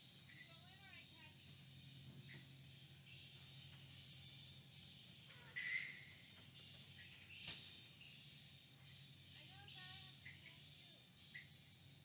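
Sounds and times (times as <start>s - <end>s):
high-pitched animal call: 5.5s - 6.0s.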